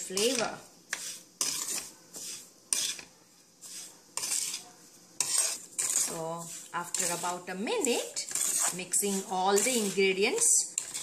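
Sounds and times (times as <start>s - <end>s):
steel spoon scraping a pan: 0.0s - 11.0s.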